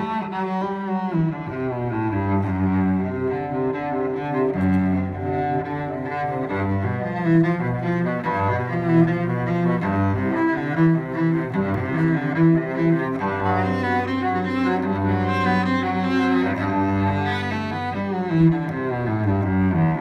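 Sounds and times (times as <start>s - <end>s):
bowed cello: 0.0s - 20.0s.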